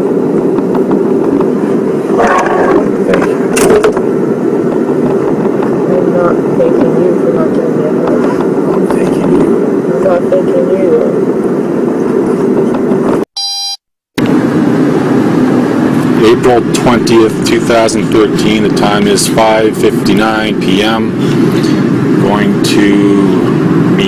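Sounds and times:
car engine and road rumble: 0.0 - 13.3, 14.2 - 24.0
faint voices: 1.5 - 3.6
short electronic beep: 13.4 - 13.8.

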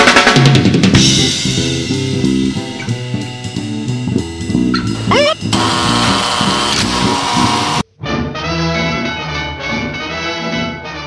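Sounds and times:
music with plucked bass line: 0.6 - 7.8.

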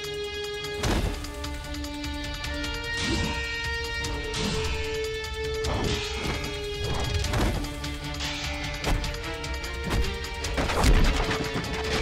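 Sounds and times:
dramatic background music: 0.0 - 12.0.

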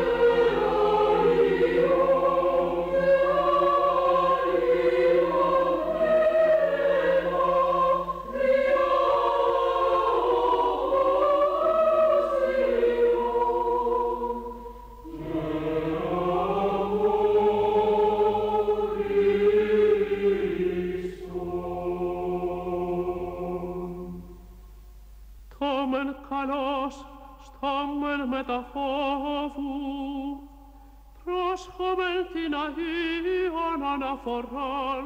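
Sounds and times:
choir singing liturgical music: 0.0 - 25.0, 25.6 - 35.0.

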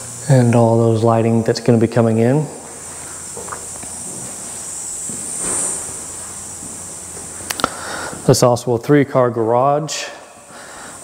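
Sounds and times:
insects chirring: 0.0 - 11.0
footsteps on bare floor: 3.0 - 7.3.

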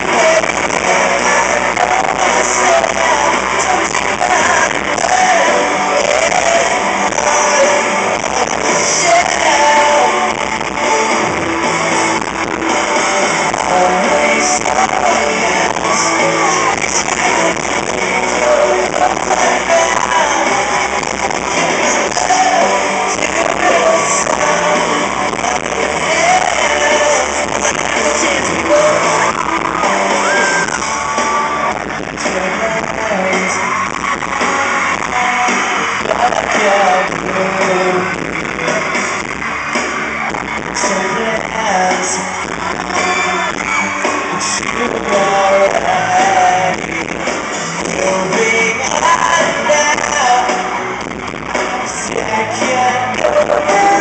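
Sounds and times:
live pop-rock band: 0.0 - 54.0
male lead vocal: 0.0 - 54.0.

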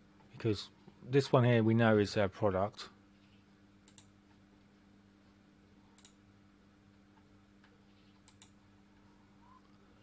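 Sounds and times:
low steady hum: 0.0 - 10.0
computer mouse clicks: 3.8 - 4.1, 6.0 - 6.2, 7.6 - 8.6.

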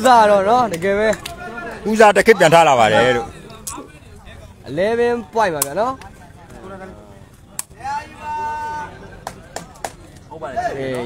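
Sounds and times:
faint crowd voices: 0.0 - 11.0.

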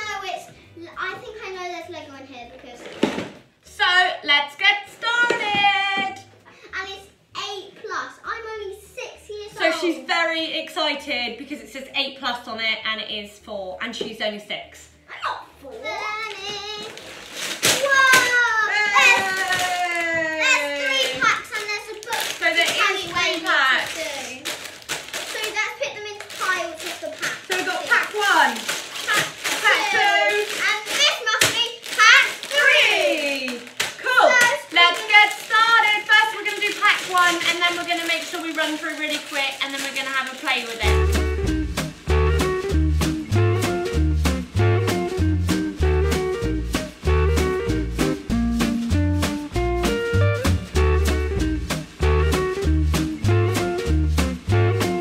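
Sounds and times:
girl and woman talking: 0.0 - 17.0, 17.7 - 24.6, 25.2 - 41.1
plastic bags crinkling: 16.2 - 41.1.

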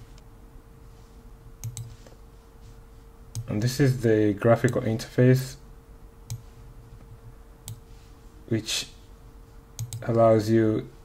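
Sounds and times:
faint steady hum: 0.0 - 11.0
computer mouse clicks: 1.6 - 2.2, 3.3 - 3.5, 6.3 - 6.5, 7.6 - 7.8, 9.8 - 10.1.

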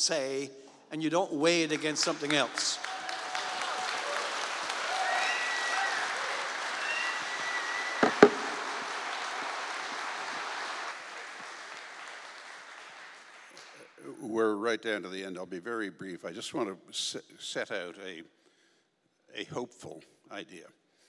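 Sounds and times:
audience applauding: 1.4 - 14.0
sharp knocks: 8.0 - 8.9.

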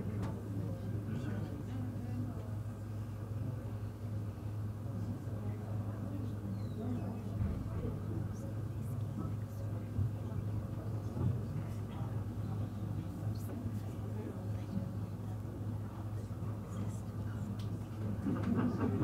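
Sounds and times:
faint background voices: 0.0 - 19.0
steady low hum: 0.0 - 19.0.

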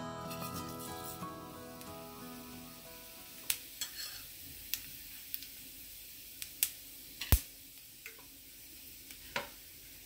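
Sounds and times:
seeds sizzling in hot oil: 0.2 - 10.0.

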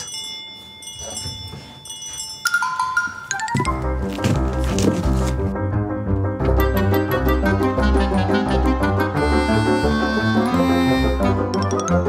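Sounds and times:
bell-like notes: 0.0 - 3.8, 11.5 - 12.0.

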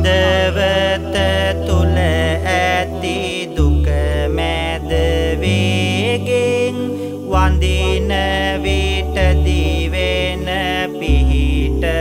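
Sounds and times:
sustained low bass notes: 0.0 - 12.0
wavering melodic chant: 0.0 - 12.0.

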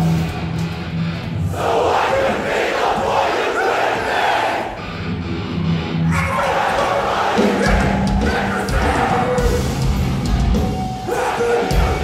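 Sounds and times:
hardcore band playing: 0.0 - 12.0
crowd shouting together: 1.4 - 4.8, 6.0 - 10.0, 10.9 - 12.0.

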